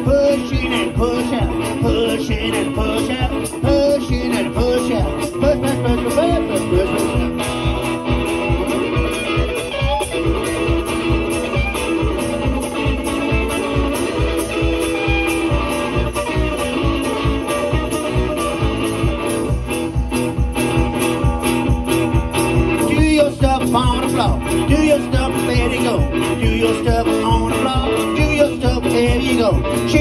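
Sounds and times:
bass drum and cymbal beat: 0.0 - 30.0
electric guitar through amplifier: 0.0 - 30.0.

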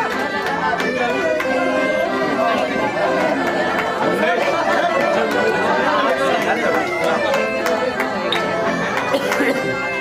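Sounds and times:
crowd chatter in hall: 0.0 - 10.0.

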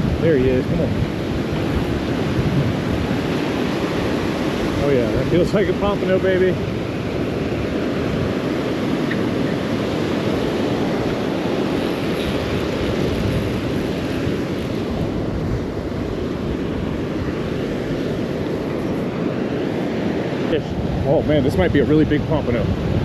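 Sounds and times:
breaking surf: 0.0 - 23.0
wind buffeting microphone: 0.0 - 23.0.

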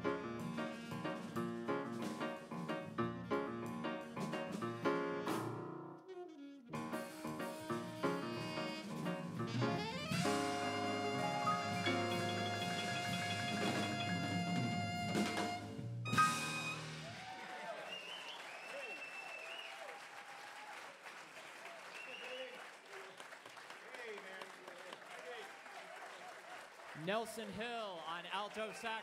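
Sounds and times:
jazz quartet playing: 0.0 - 17.1
audience cheering: 16.7 - 23.2, 23.9 - 27.5
audience applauding: 17.0 - 29.0.

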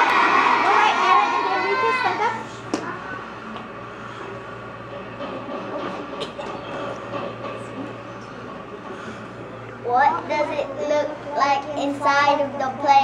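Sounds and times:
constant background noise: 0.0 - 13.0
steady low hum: 0.0 - 13.0.

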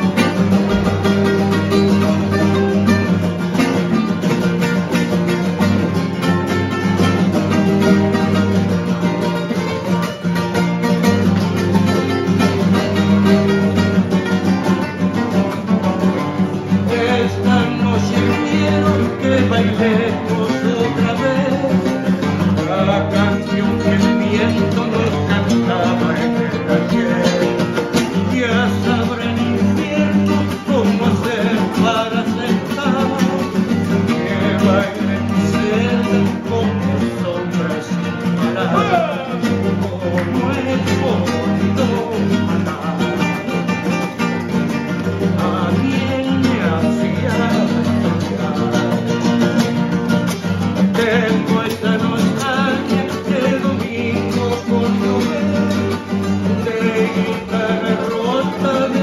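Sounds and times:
acoustic guitars strumming: 0.0 - 59.0
man singing: 0.0 - 59.0.

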